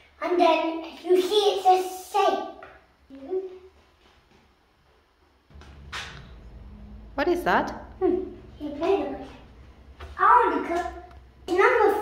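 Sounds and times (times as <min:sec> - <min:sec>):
low rumble: 0:05.5 - 0:10.4.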